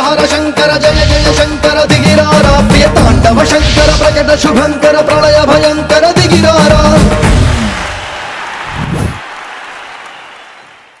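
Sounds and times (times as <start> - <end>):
audience applauding: 7.2 - 11.0.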